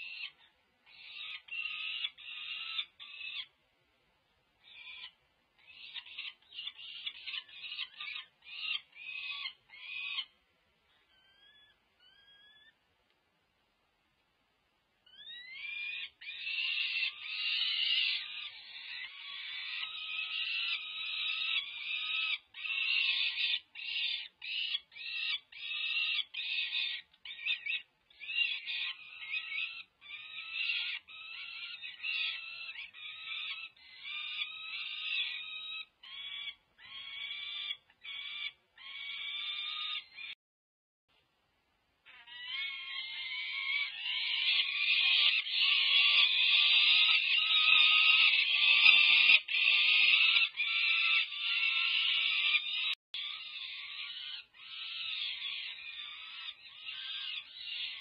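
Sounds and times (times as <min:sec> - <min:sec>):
falcon chicks begging calls: 0:00.0 - 0:03.6, 0:04.6 - 0:10.4, 0:15.1 - 0:40.4, 0:42.1 - 0:58.0.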